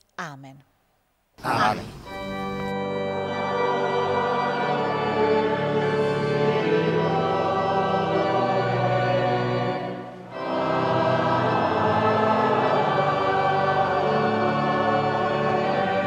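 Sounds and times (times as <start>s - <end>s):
choir singing a hymn: 1.5s - 16.0s.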